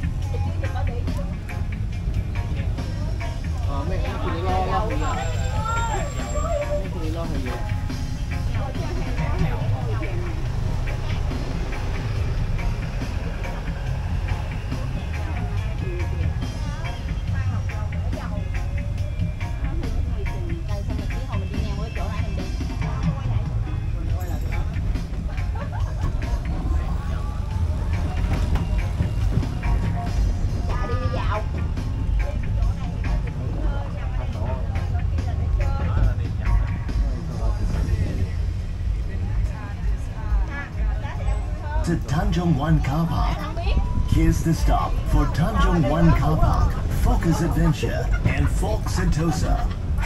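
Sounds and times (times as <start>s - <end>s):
bus engine and road rumble: 0.0s - 50.0s
person talking: 44.2s - 49.7s.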